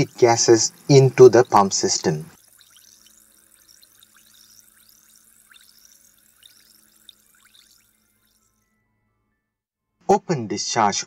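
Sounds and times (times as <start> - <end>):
carbonated water fizzing: 0.0 - 8.6.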